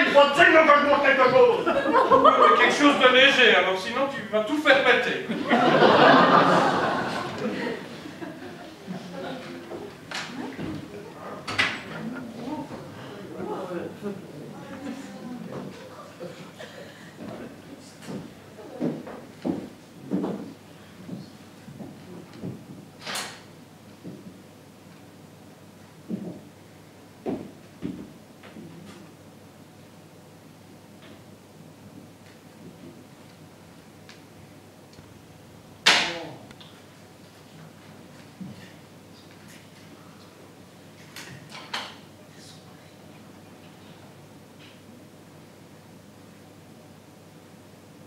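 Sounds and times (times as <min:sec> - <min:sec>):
faint voices in a hall: 0:06.4 - 0:23.2, 0:35.9 - 0:36.7, 0:41.2 - 0:45.2.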